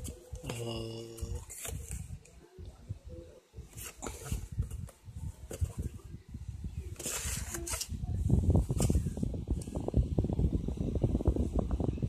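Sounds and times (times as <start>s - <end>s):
low rumble on microphone: 0.2s - 12.0s.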